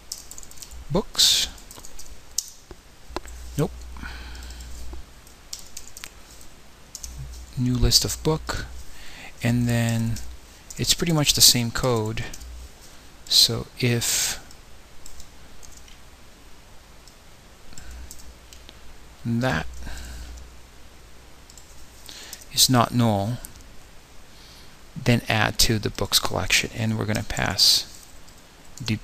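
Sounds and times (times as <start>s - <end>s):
low hum and hiss: 0.0s - 29.0s.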